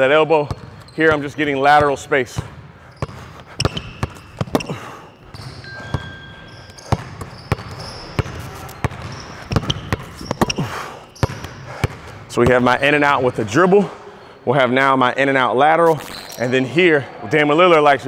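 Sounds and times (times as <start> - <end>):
sneakers squeaking on court: 0.0 - 13.6, 15.9 - 16.7
basketball bouncing on hardwood floor: 1.8 - 6.1, 6.8 - 12.6.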